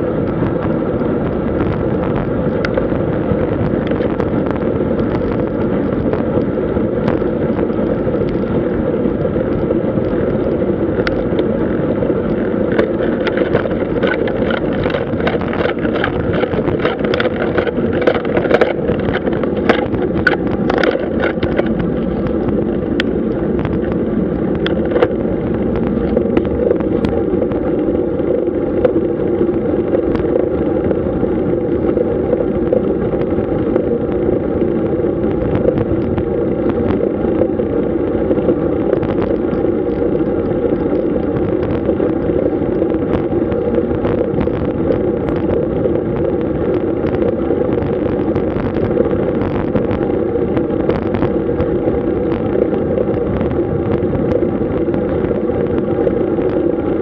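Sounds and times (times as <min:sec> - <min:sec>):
bike tyre rumble on asphalt: 0:00.0 - 0:57.0
wind rush on microphone: 0:00.0 - 0:57.0.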